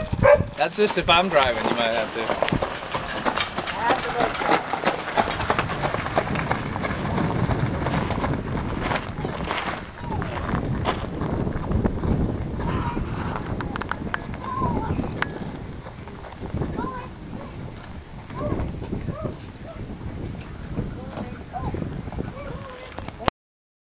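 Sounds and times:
horse hooves clip-clopping: 0.0 - 19.2.

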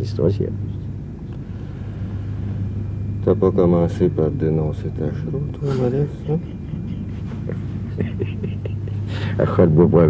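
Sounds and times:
steady low hum: 0.0 - 10.0
man chuckling softly: 5.6 - 9.5.

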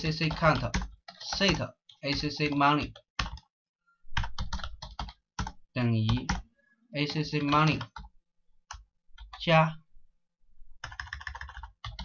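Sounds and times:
computer keyboard typing: 0.0 - 3.6, 4.2 - 9.5, 10.8 - 12.0.

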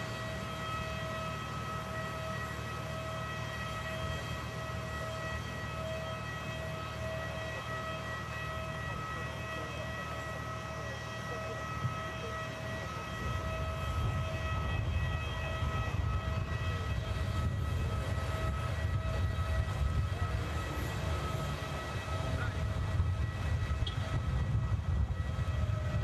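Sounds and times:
vehicle engine rumble: 0.0 - 26.0.

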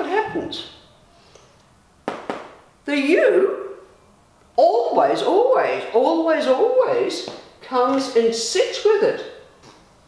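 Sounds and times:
marker tapping on whiteboard: 2.1 - 2.6.

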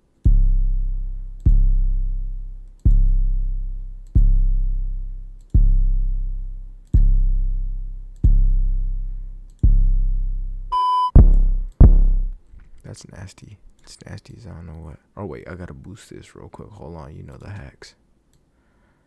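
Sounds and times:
deep sub-bass booms: 0.3 - 12.4
short high beep: 10.7 - 11.2.

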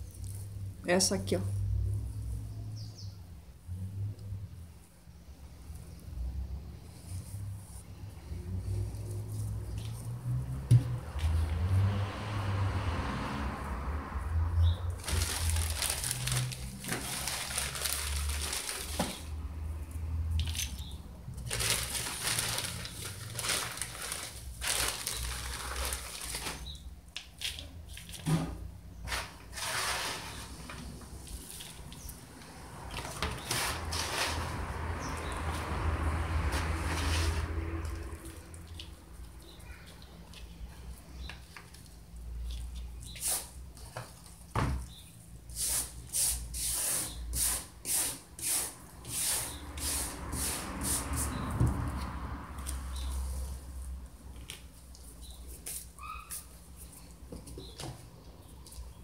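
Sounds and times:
plastic bag crinkling: 14.9 - 19.4, 20.4 - 26.9.

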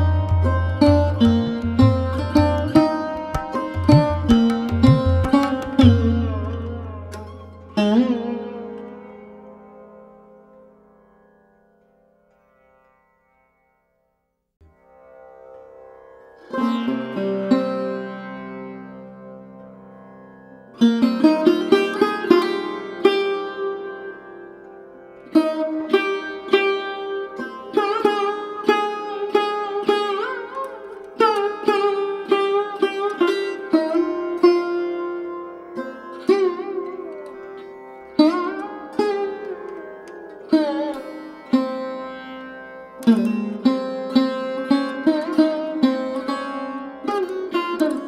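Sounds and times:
plucked string instrument: 0.0 - 13.5, 14.6 - 48.0.

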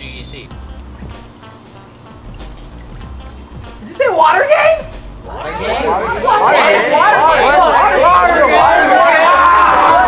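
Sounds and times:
excited babble of voices: 4.2 - 10.0.

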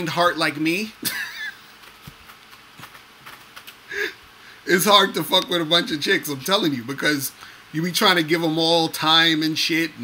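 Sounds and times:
man laughing high-pitched: 1.0 - 1.8.

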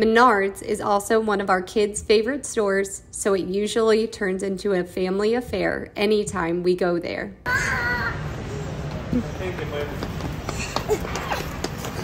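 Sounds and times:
store background noise: 0.0 - 12.0
small child crying and squealing: 7.5 - 8.3.

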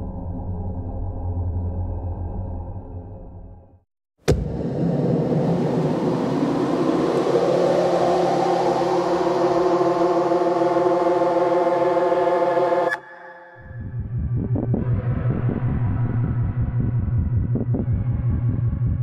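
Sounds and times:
hissing noise drone: 4.3 - 13.3
steady held tones: 4.3 - 14.3
low pulsing drone: 4.3 - 19.0.

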